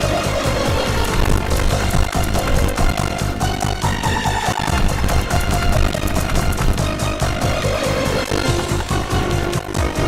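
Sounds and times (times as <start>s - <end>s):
slot game background music: 0.0s - 10.0s.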